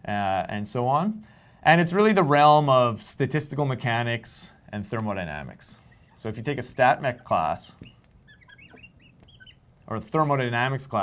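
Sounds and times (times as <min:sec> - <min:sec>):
marker squeaking on glass: 0:05.7 - 0:09.8.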